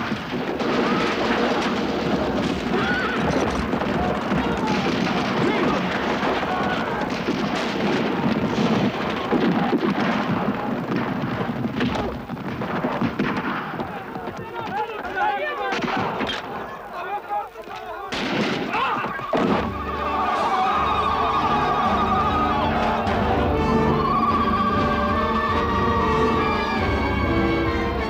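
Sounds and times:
rifle and machine-gun fire: 0.0 - 14.3, 18.1 - 19.8
men shouting and yelling: 2.1 - 10.9, 13.4 - 27.7.

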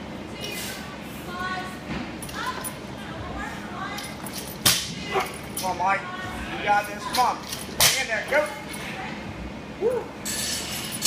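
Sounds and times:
steady room noise: 0.0 - 11.0.

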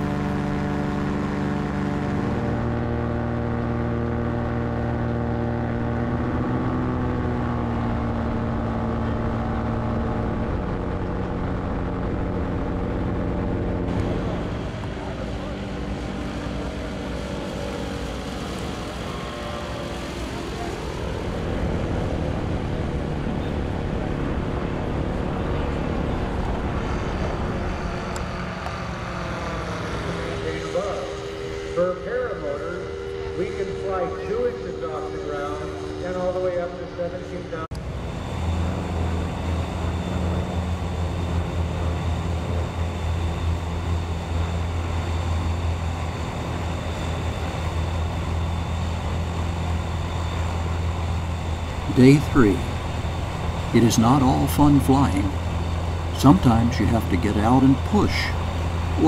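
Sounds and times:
ultralight engine and propeller droning: 0.0 - 59.0
ultralight flying past: 0.0 - 59.0.

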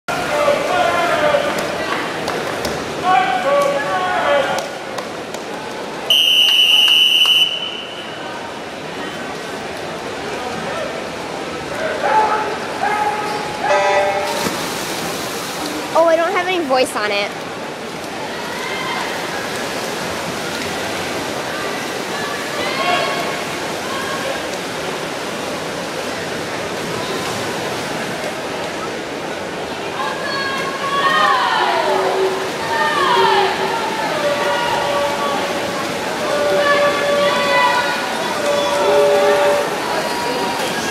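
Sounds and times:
swimmers splashing: 0.1 - 40.9
crowd voices echoing: 29.9 - 40.9.

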